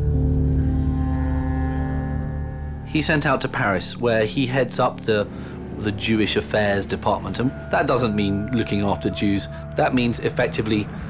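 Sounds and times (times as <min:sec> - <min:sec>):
low droning background music: 0:00.0 - 0:11.0.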